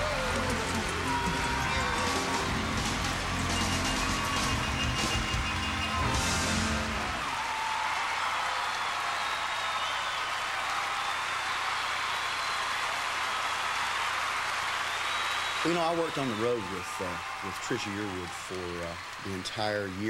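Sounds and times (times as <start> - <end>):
band music: 0.0 - 7.3
audience applauding and cheering: 0.0 - 20.0.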